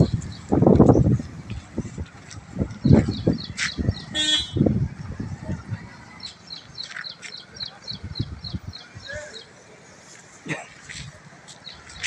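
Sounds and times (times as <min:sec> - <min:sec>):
vehicle horn toot: 0:04.1 - 0:04.7.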